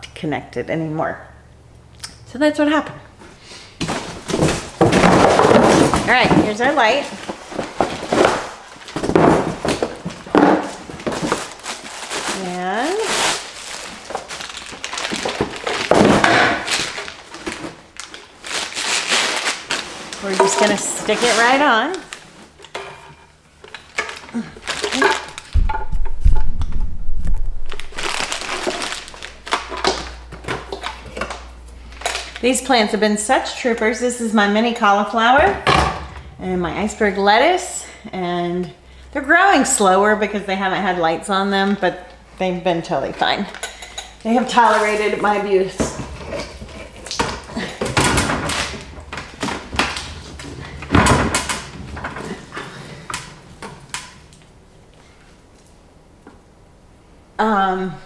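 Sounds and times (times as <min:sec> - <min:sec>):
plastic knocks and clatter: 0:03.8 - 0:11.5, 0:15.0 - 0:17.8, 0:23.6 - 0:31.4
plastic and metal parts clattering: 0:03.8 - 0:12.5, 0:13.4 - 0:26.8, 0:27.7 - 0:32.4, 0:43.5 - 0:54.4
plastic rustling: 0:03.8 - 0:32.6, 0:43.2 - 0:55.8.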